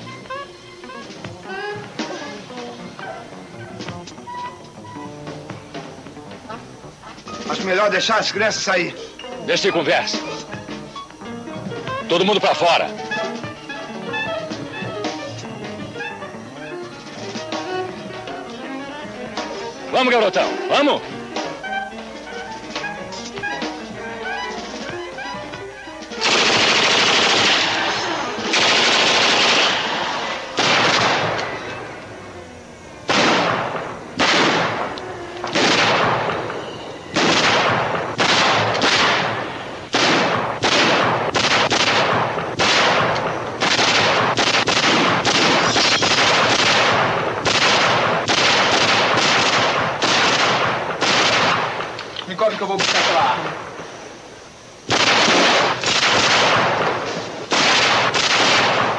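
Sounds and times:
music: 0:00.0 - 0:58.9
heavy gunfire with echo: 0:26.2 - 0:31.7, 0:33.1 - 0:34.9, 0:35.5 - 0:36.6, 0:37.2 - 0:52.0, 0:52.8 - 0:53.9, 0:54.9 - 0:58.9.

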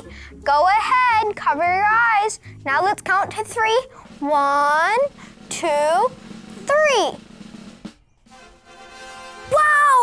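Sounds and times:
child speaking: 0:00.4 - 0:07.2, 0:09.5 - 0:10.0
drum roll: 0:02.8 - 0:10.0.

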